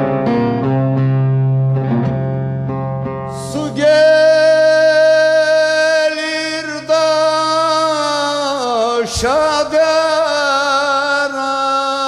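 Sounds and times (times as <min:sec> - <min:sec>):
live folk music with held notes: 0:00.0 - 0:10.1.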